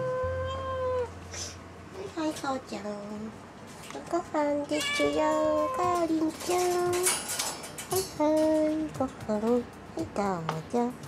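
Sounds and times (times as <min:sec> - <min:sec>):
cat meowing: 0:04.7 - 0:06.0.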